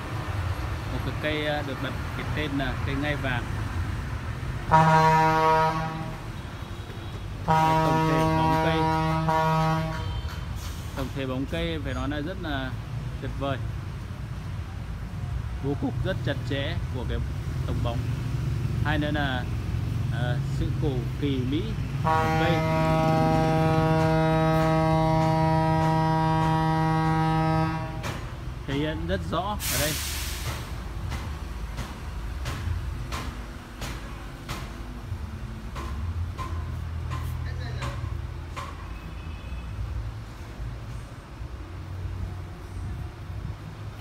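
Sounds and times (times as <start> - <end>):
horn blasts: 4.7 - 10.6, 21.8 - 28.3.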